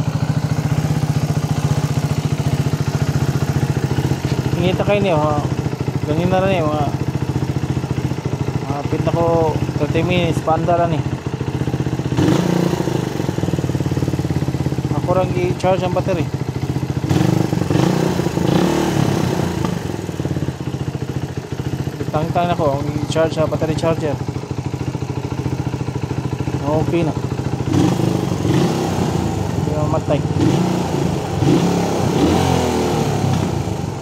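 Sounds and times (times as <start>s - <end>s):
motorcycle engine idling: 0.0s - 34.0s.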